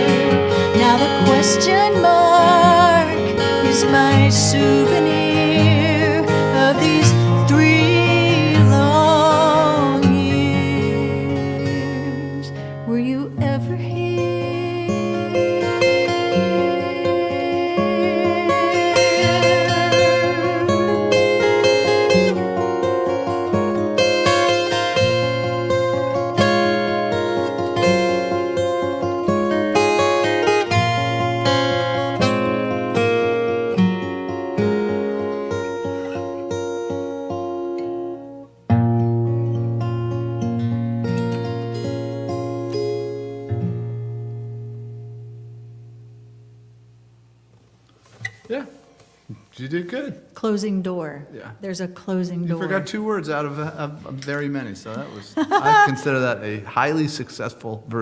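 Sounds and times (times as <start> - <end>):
fingerpicked acoustic guitars: 0.0 - 49.7, 51.3 - 57.0.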